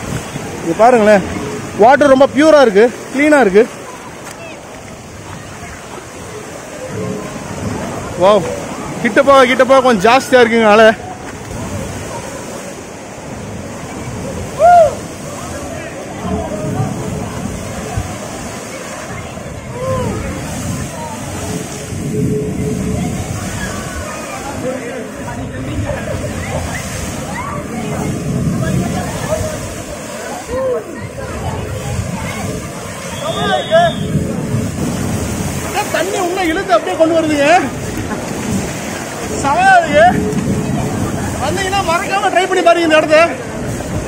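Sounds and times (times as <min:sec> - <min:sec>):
water sloshing and splashing: 0:00.0 - 0:44.0
wave breaking against pool wall: 0:00.0 - 0:44.0
people shouting: 0:14.3 - 0:15.1, 0:19.6 - 0:21.5, 0:26.1 - 0:34.4.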